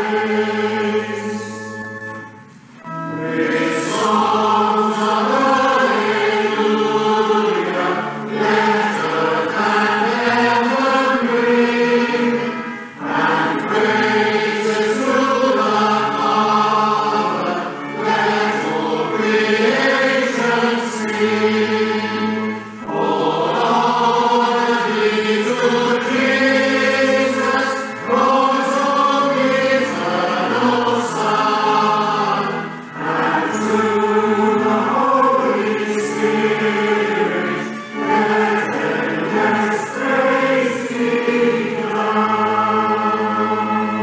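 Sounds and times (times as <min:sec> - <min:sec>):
choir singing a hymn: 0:00.0 - 0:44.0.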